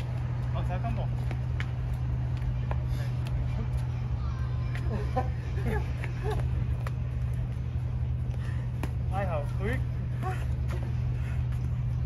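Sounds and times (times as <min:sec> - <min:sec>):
low outdoor hum: 0:00.0 - 0:12.0.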